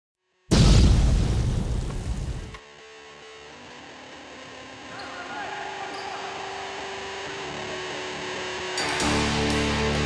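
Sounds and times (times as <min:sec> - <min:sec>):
voices in sports hall: 0:04.8 - 0:08.6.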